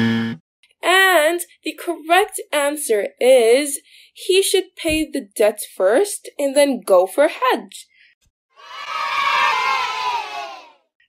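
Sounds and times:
children cheering and shouting: 0:08.6 - 0:10.9.

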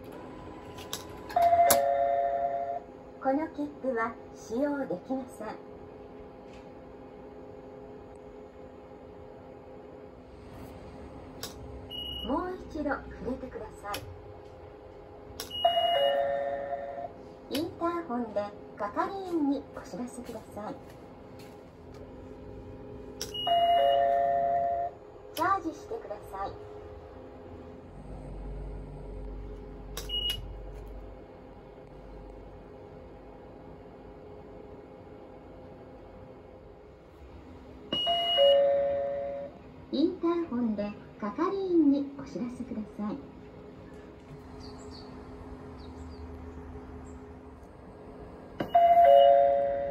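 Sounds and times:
high beep: 0:11.9 - 0:12.3, 0:15.5 - 0:16.3, 0:23.3 - 0:24.2
high steady beep: 0:11.9 - 0:12.4, 0:15.4 - 0:16.9, 0:23.3 - 0:24.9, 0:30.0 - 0:30.5, 0:37.9 - 0:39.3
ticket gate error chime: 0:48.6 - 0:49.9.

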